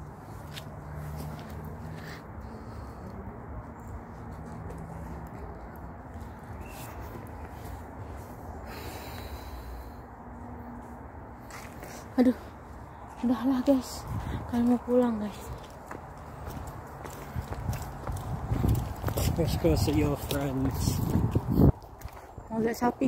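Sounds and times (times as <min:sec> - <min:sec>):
wind rumble on microphone: 0:13.9 - 0:14.8, 0:17.1 - 0:23.0.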